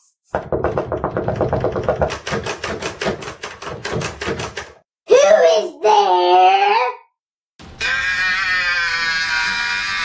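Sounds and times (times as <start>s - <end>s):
rapid knocks: 0.4s - 4.8s.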